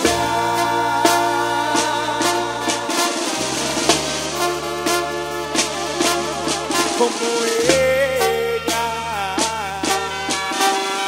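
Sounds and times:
low bass line: 0:00.0 - 0:10.6
snare and bass drum fill: 0:00.0 - 0:11.0
wind-instrument chords: 0:00.0 - 0:11.0.

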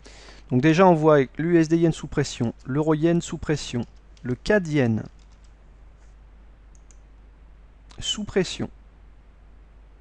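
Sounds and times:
low steady hum: 0:00.0 - 0:10.0
keyboard clicks: 0:05.0 - 0:05.6, 0:06.7 - 0:07.0.

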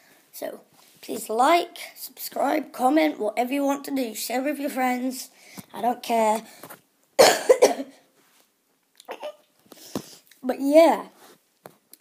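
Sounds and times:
boy coughing into sleeve: 0:07.2 - 0:08.0.

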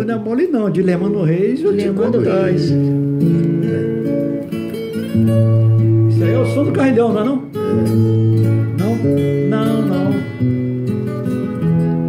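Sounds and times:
solo acoustic guitar waltz: 0:01.7 - 0:12.0.

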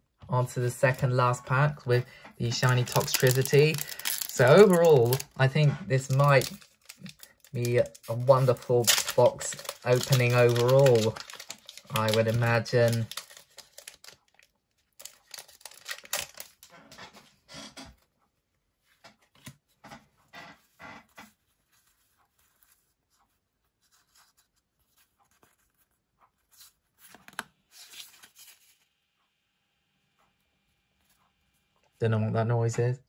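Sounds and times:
cards being handled: 0:02.4 - 0:16.7, 0:23.8 - 0:28.8
foil wrapper tearing and crinkling: 0:02.4 - 0:16.7.

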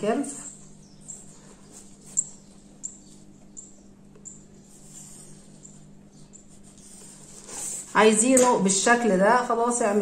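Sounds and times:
faint steady hum: 0:00.0 - 0:10.0
pencil scratching on paper: 0:04.6 - 0:08.1.

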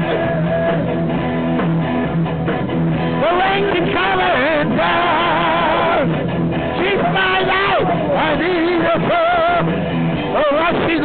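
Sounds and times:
band music with guitar: 0:00.0 - 0:11.0
person singing: 0:03.1 - 0:11.0.

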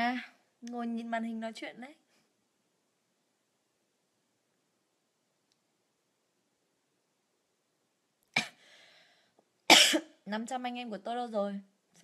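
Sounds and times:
woman coughing: 0:08.4 - 0:08.6, 0:09.7 - 0:10.2
breathy exhale: 0:08.6 - 0:09.4.

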